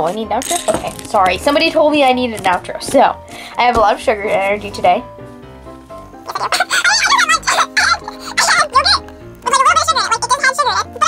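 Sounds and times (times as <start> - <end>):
background music: 0.0 - 11.0
girl's playful vocal noises: 6.3 - 11.0.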